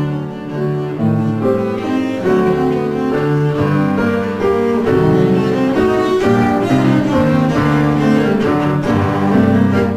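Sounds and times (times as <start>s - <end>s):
cello playing melody: 0.0s - 9.9s
piano accompaniment: 0.0s - 9.9s.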